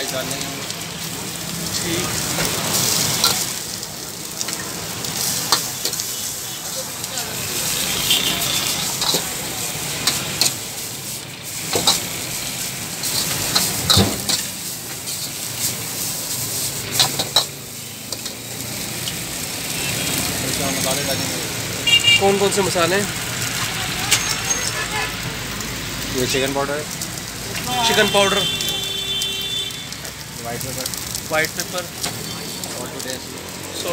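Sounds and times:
rice sizzling in a wok: 0:00.0 - 0:33.9
metal ladle scraping a wok: 0:07.6 - 0:18.4.

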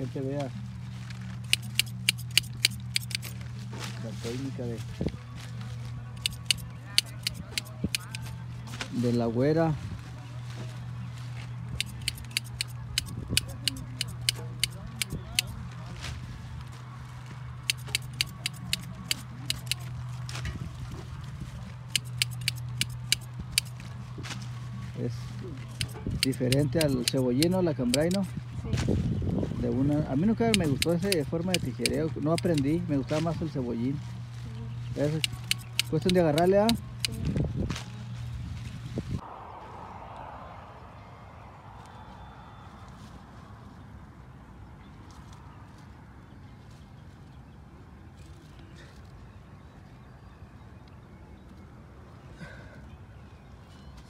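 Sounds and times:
onion stalks rustling: 0:00.0 - 0:39.2
shears snipping: 0:00.7 - 0:04.7, 0:05.4 - 0:09.0, 0:11.2 - 0:16.2, 0:17.6 - 0:29.0, 0:30.1 - 0:38.7
sharp clicks of onions trimmed: 0:01.5 - 0:03.4, 0:06.2 - 0:08.2, 0:11.8 - 0:15.5, 0:17.7 - 0:19.9, 0:22.0 - 0:23.8, 0:25.8 - 0:28.3, 0:30.5 - 0:32.7, 0:35.1 - 0:37.2.

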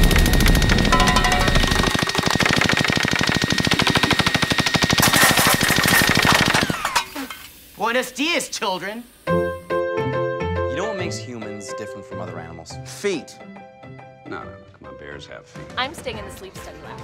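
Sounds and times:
paintball gun firing rapidly: 0:00.0 - 0:06.9.

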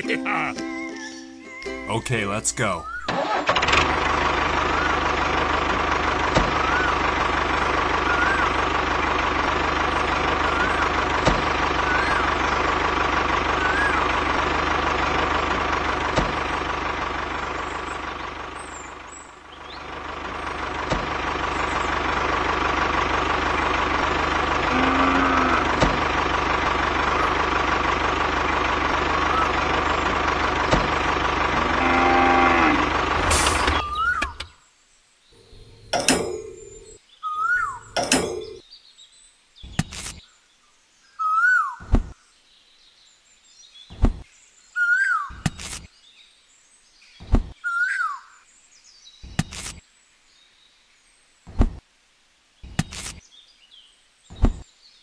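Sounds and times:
tractor engine droning: 0:01.7 - 0:34.5, 0:35.4 - 0:37.0, 0:37.6 - 0:38.6.

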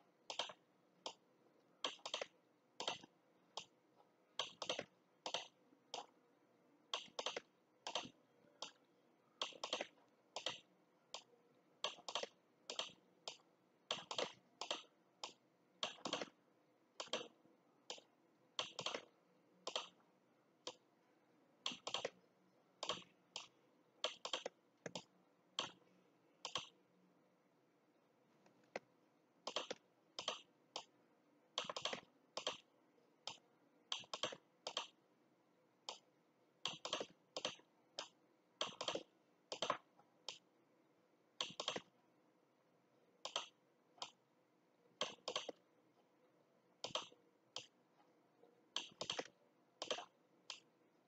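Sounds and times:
mouse and keyboard clicks: 0:00.3 - 0:01.2, 0:01.8 - 0:03.8, 0:04.4 - 0:06.2, 0:06.9 - 0:16.4, 0:17.0 - 0:20.0, 0:20.6 - 0:20.8, 0:21.6 - 0:22.2, 0:22.8 - 0:26.8, 0:28.4 - 0:35.0, 0:35.8 - 0:40.5, 0:41.4 - 0:41.9, 0:43.2 - 0:44.2, 0:45.0 - 0:45.7, 0:46.8 - 0:47.8, 0:48.7 - 0:50.7.

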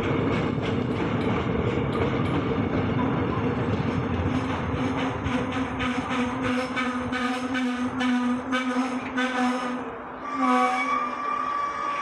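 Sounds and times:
train coaches rumbling: 0:00.0 - 0:12.0
train brake squeal: 0:10.2 - 0:12.0.

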